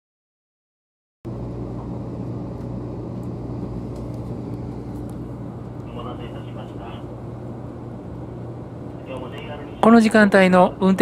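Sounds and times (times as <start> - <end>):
constant low hum: 1.3 - 11.0
train cabin rumble: 1.3 - 11.0.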